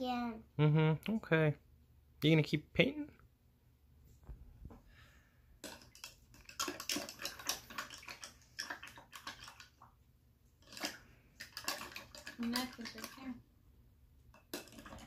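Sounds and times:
paintbrush splashing in water cup: 5.6 - 10.0, 10.6 - 13.2.

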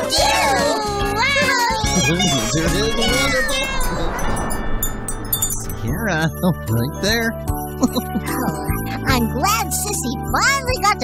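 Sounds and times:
excited high-pitched voices: 0.0 - 4.2
children's song music: 0.0 - 4.8, 5.8 - 11.0.

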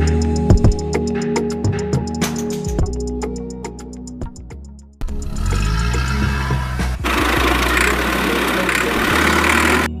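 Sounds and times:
tractor engine: 5.0 - 10.0.

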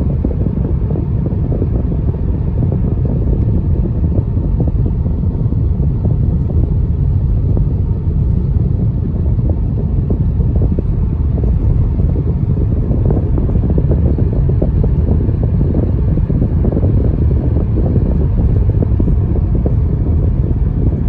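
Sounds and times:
car driving on road interior: 0.0 - 21.0.

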